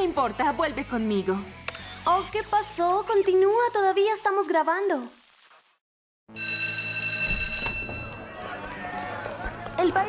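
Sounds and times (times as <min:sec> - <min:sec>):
school bell ringing: 0:06.3 - 0:08.5.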